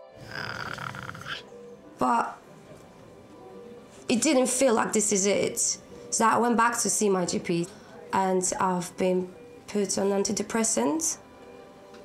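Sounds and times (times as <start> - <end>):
soft background music: 0.0 - 12.0
woman speaking emotionally: 2.0 - 2.4, 4.1 - 11.2.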